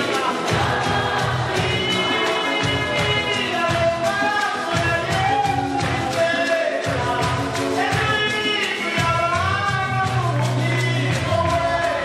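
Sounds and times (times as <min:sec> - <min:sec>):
choir singing gospel song: 0:00.0 - 0:08.5, 0:10.8 - 0:12.0
steady beat: 0:00.0 - 0:12.0.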